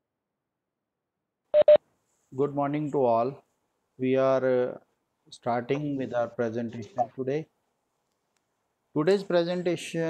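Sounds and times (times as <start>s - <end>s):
short electronic beeps: 1.6s - 1.8s.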